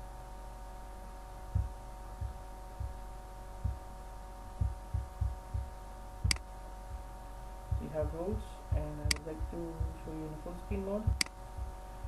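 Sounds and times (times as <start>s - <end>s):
electrical hum: 0.0s - 12.0s
soft low thumps: 1.5s - 3.9s, 4.6s - 12.0s
sharp click: 11.2s - 11.4s.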